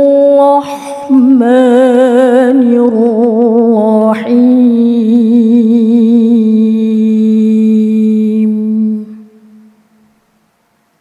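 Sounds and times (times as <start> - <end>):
woman reciting in long melodic note: 0.0 - 10.1.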